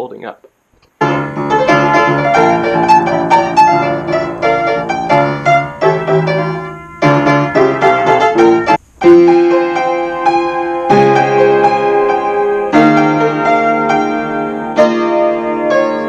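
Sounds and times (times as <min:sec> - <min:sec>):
upright piano playing: 0:01.0 - 0:16.0.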